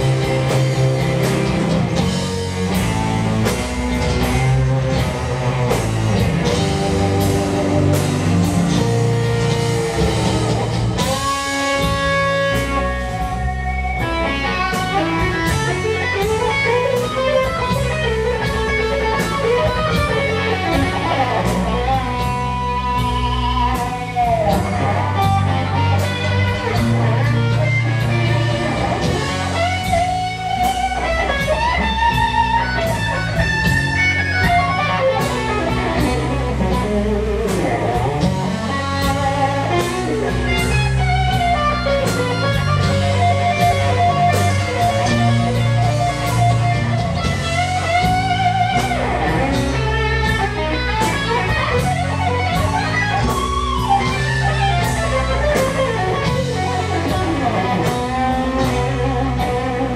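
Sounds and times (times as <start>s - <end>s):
bass guitar: 0.0s - 59.9s
drum kit: 0.0s - 59.9s
electric guitar lead: 0.0s - 59.9s.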